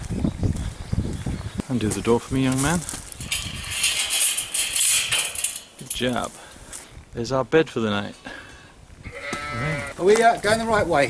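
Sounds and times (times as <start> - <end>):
metal gate rattling and scraping: 2.6 - 6.4.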